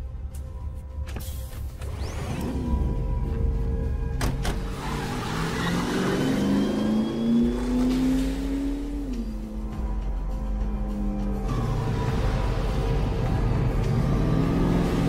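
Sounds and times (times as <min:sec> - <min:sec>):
car engine revving: 0:01.8 - 0:15.0.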